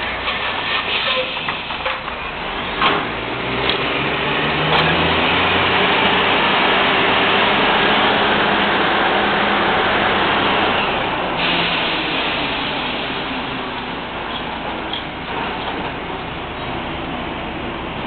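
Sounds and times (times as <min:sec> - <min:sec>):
drilling rig machinery running: 0:00.0 - 0:18.0.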